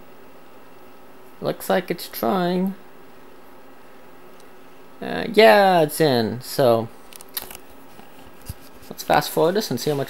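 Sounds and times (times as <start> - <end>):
computer fan hiss: 0.0 - 10.0.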